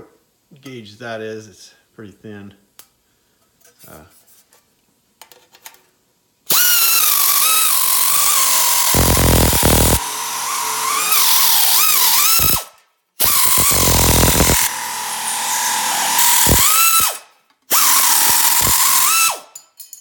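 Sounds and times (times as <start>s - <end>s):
air nibbler cutting sheet metal: 8.3s - 10.2s, 11.2s - 12.6s, 13.2s - 17.2s.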